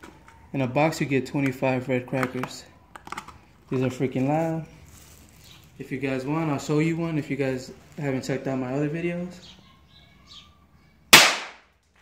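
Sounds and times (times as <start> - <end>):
firecracker bang: 11.1 - 11.6.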